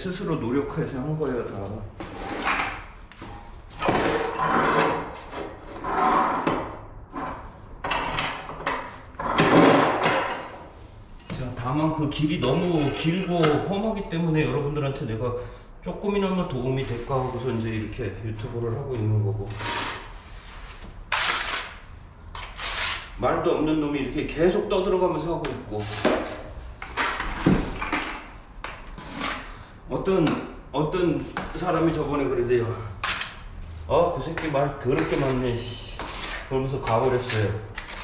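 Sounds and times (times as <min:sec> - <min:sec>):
trowel scraping tile adhesive: 0:02.0 - 0:02.9, 0:03.8 - 0:10.0, 0:19.4 - 0:21.8, 0:22.4 - 0:23.2, 0:28.9 - 0:29.7, 0:34.3 - 0:38.0
rubbing or scraping strokes: 0:19.4 - 0:21.8, 0:29.0 - 0:29.8, 0:33.6 - 0:38.0.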